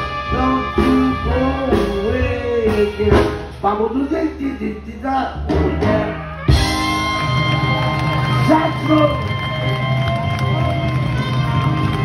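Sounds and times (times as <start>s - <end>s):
live jazz band: 0.0s - 12.0s.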